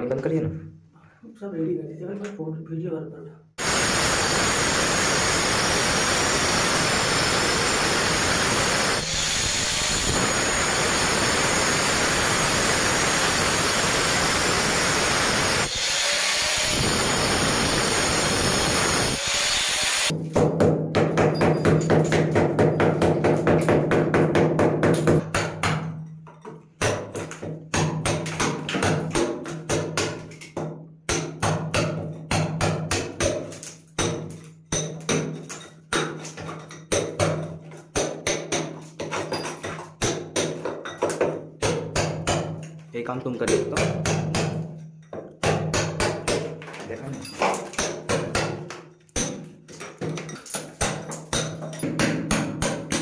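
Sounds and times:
angle grinder cutting tile: 3.6s - 20.2s.

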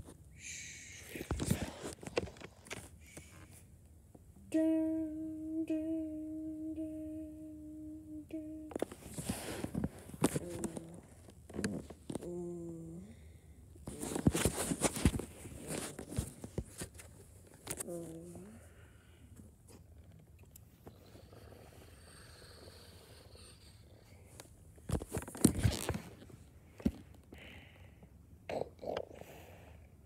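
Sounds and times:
low voiced hum: 4.4s - 16.7s.

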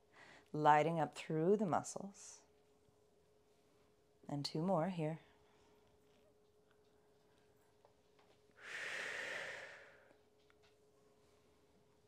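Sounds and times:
person exhaling: 8.6s - 10.1s.

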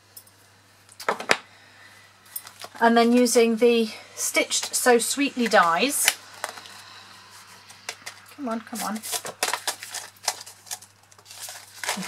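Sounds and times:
plastic pouch crackling: 7.8s - 12.0s.

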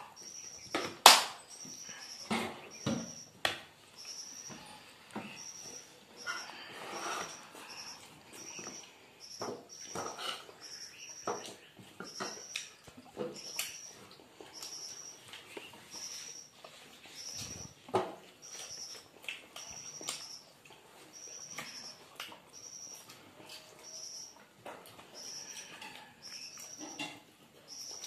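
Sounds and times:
chewing and lip-smacking: 16.6s - 26.8s.

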